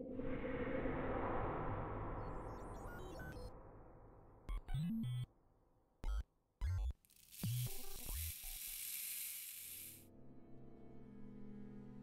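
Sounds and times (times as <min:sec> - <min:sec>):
high electronic hiss: 0:07.1 - 0:10.0.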